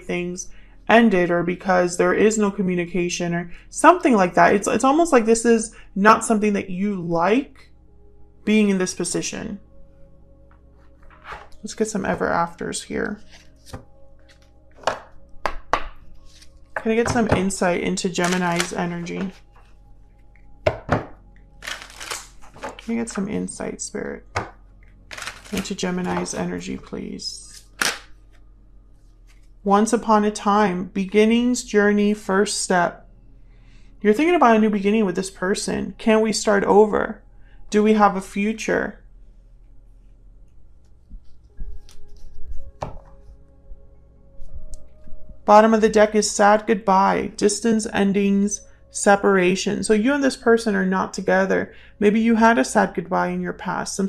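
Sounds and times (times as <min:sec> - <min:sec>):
soft background music: 0:00.0 - 0:54.0
cards shuffled by hand: 0:13.2 - 0:15.6, 0:18.2 - 0:19.7, 0:21.6 - 0:22.9, 0:25.1 - 0:25.6
card slaps: 0:13.6 - 0:16.4, 0:27.5 - 0:28.1
cards knocking and slapping on table: 0:14.8 - 0:16.4, 0:20.7 - 0:21.2, 0:42.8 - 0:43.1.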